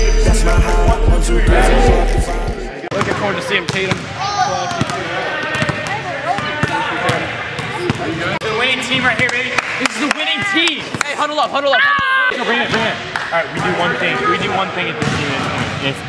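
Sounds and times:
music with a heavy beat: 0:00.0 - 0:02.7
basketball bouncing on gym floor: 0:07.6 - 0:08.2.

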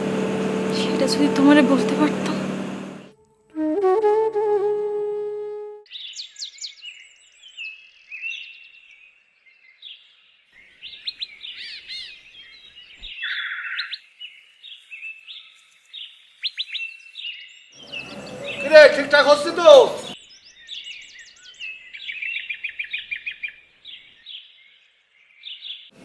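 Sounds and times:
birds chirping and whistling: 0:05.9 - 0:09.0, 0:10.6 - 0:24.7.

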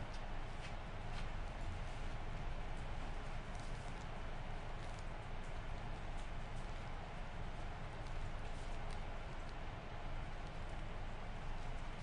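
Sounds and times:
steady hiss and hum: 0:00.0 - 0:12.0.

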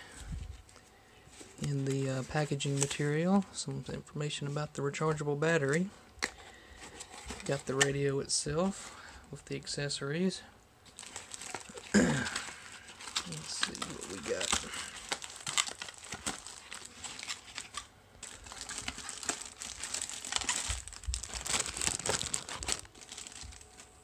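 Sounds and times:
plastic wrap crinkling: 0:10.8 - 0:24.0.

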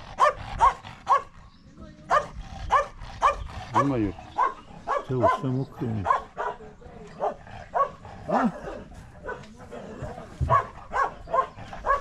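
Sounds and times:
dog barking: 0:00.1 - 0:01.4, 0:02.1 - 0:06.6, 0:07.2 - 0:09.6, 0:10.4 - 0:12.0.

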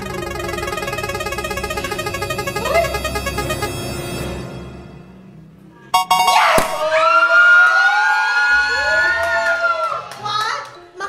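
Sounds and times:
people screaming with excitement: 0:06.3 - 0:10.1.

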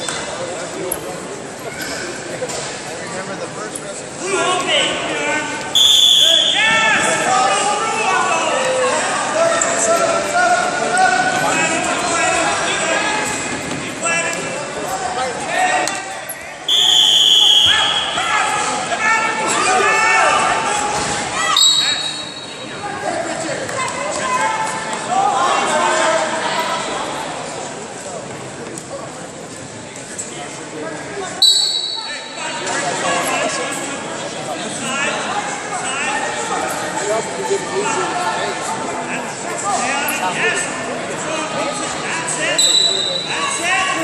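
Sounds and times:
voices echoing in hall: 0:00.0 - 0:44.0
whistle blast: 0:05.8 - 0:06.8, 0:16.7 - 0:18.2, 0:21.5 - 0:22.6, 0:31.4 - 0:32.2, 0:42.6 - 0:43.3.

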